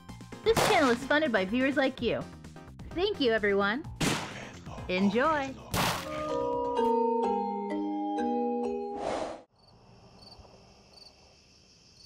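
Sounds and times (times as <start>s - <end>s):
crickets chirping: 9.6s - 12.0s.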